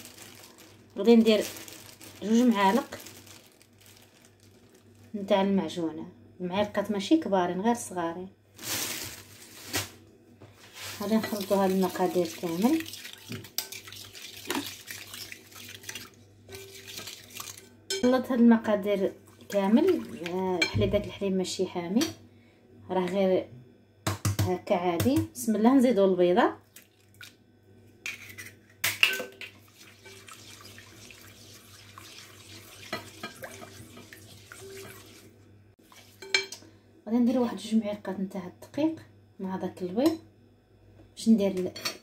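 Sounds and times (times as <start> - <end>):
spatula stirring wet mixture: 11.0 - 17.7, 19.2 - 20.7, 29.5 - 36.5.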